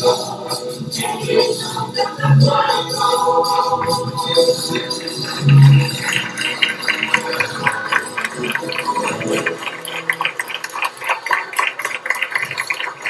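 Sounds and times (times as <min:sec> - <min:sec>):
audience applauding: 0:03.8 - 0:13.0.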